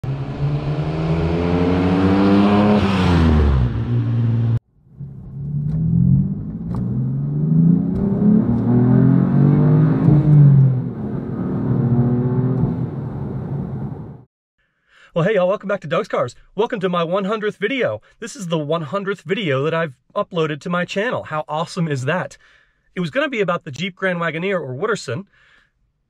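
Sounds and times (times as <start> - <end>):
car engine accelerating: 0.0 - 14.3.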